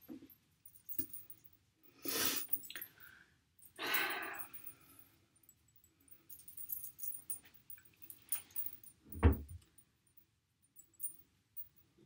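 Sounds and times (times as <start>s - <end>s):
chain bracelet jingling: 0.0s - 1.6s, 3.6s - 9.8s, 10.7s - 11.8s
low thump: 9.1s - 9.5s.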